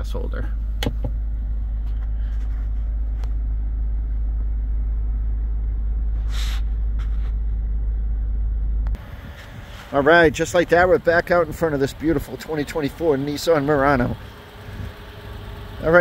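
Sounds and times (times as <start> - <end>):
car engine rumble inside cabin: 0.0 - 16.0
outdoor background: 0.0 - 16.0
brief rustle: 6.2 - 7.6.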